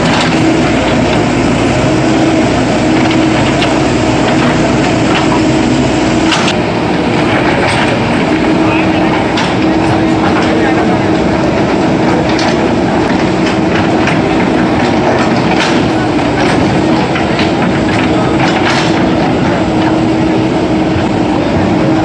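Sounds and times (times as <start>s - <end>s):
diesel engine under load: 0.0s - 22.0s.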